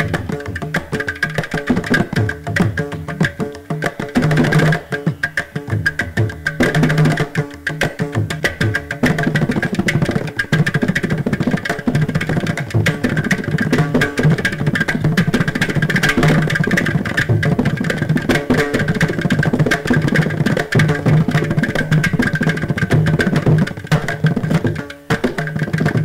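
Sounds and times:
mridangam fast strokes: 0.0 - 26.0.

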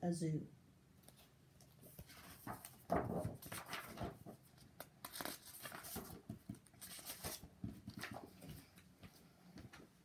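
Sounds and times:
book pages and cover rustling: 1.0 - 9.8.

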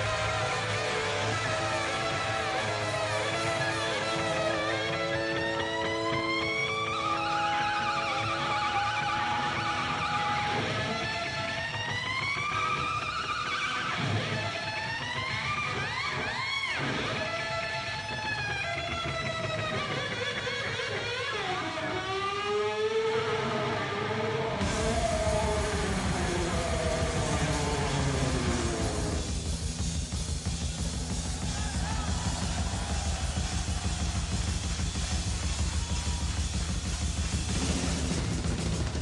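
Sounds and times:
live rock band playing: 0.0 - 39.0
electric guitar note sliding up: 22.0 - 29.9.

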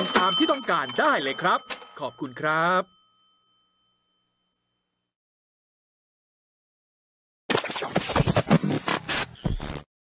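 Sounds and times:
faint high ringing tones: 0.0 - 5.2.

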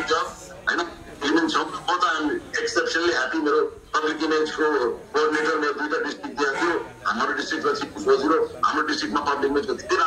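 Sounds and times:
man speaking into a microphone: 0.0 - 10.0.

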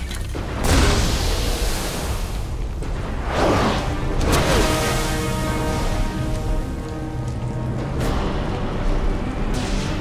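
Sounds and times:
film score held notes: 0.4 - 10.0
steady rain falling: 4.0 - 9.4.

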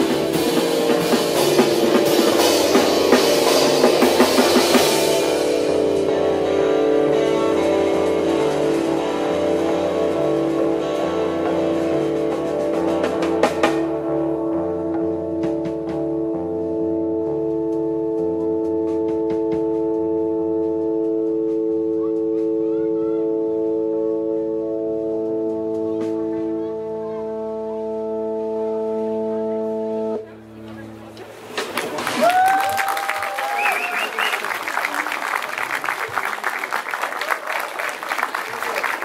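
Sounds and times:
bass line: 0.0 - 31.2
electric guitars and keyboard chord: 0.0 - 31.6.

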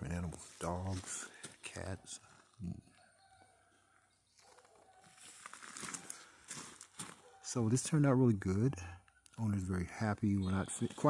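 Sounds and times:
distant bird calls: 1.2 - 11.0
distant farm animal calls: 1.7 - 6.5
soft rustling or crunching: 4.4 - 7.3.

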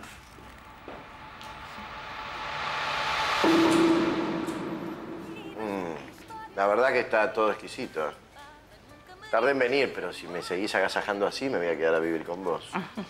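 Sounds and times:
held low note: 0.2 - 6.6
musical swell: 0.5 - 6.6.

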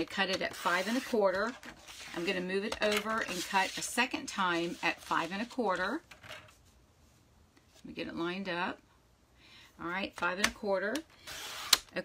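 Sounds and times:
paper sliding and rustling: 0.6 - 6.0.

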